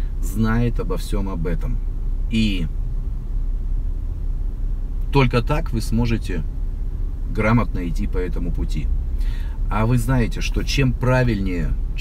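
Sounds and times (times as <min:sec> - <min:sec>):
low rumble inside car cabin: 0:00.0 - 0:12.0.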